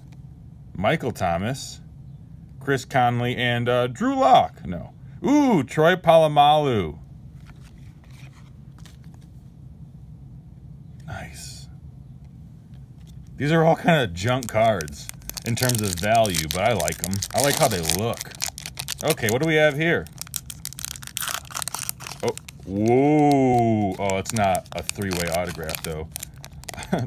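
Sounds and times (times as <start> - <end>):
steady low hum: 0.0 - 27.0
trading cards rustling and clicking: 7.4 - 9.3, 13.0 - 27.0
foil wrapper crinkling and tearing: 13.8 - 27.0.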